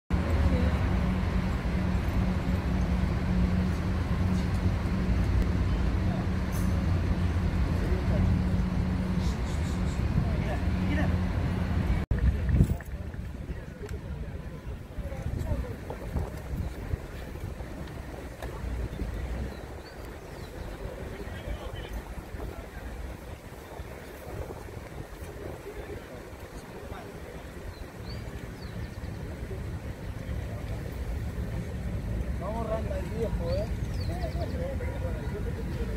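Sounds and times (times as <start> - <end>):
murmur of distant voices: 0.1 - 35.9
wind buffeting microphone: 0.2 - 35.9.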